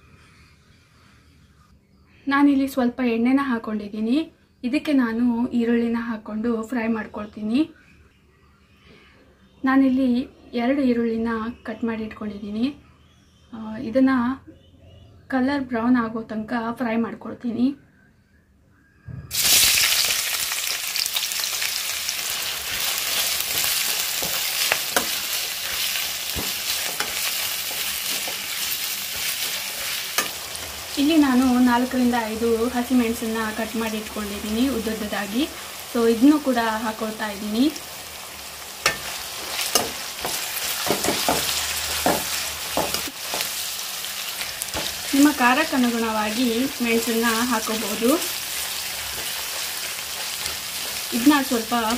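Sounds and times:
onions sizzling in hot oil: 19.3s - 51.9s
spatula tapping a pan: 23.5s - 29.6s, 38.8s - 43.6s.

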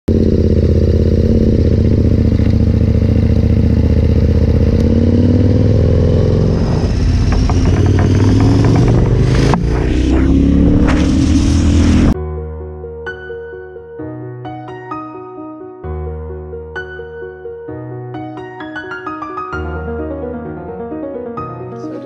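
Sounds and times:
motorcycle engine accelerating: 0.0s - 12.2s.

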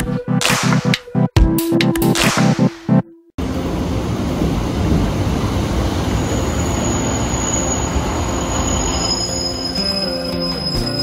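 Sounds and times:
train rumbling: 3.4s - 11.0s
high-pitched squeal: 5.5s - 11.0s.

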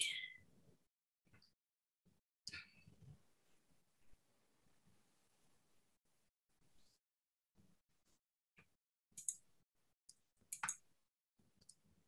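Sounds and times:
computer mouse clicks: 9.2s - 9.4s, 10.1s - 10.8s.

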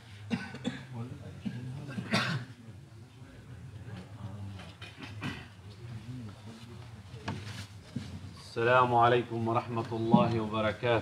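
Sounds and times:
person coughing: 0.3s - 2.5s.

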